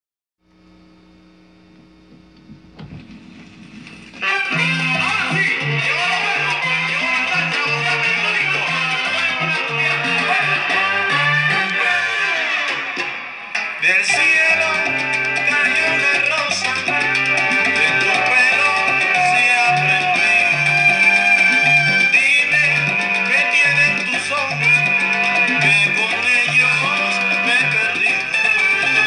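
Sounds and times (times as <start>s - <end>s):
low steady turntable hum: 0.4s - 4.3s
latin dance song with guitar: 2.1s - 29.0s.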